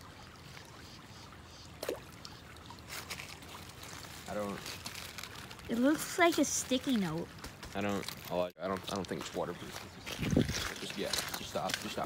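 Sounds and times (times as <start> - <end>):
creek water running: 0.0 - 12.0.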